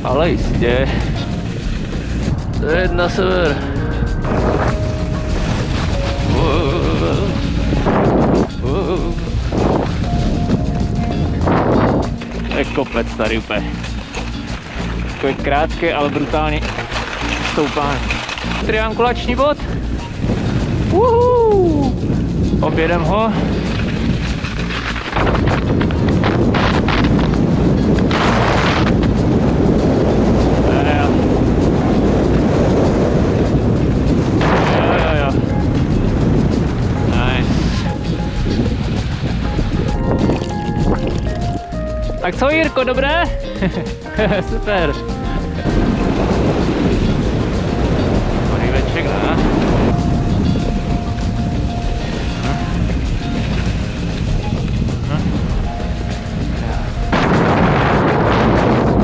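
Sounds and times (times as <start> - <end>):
background music: 0.0 - 59.0
wind rumble on microphone: 0.0 - 59.0
faint voice or music: 6.2 - 7.6.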